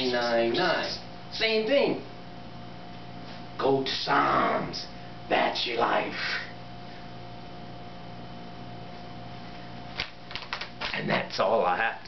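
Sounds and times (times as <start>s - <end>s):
electrical room hum: 0.0s - 12.0s.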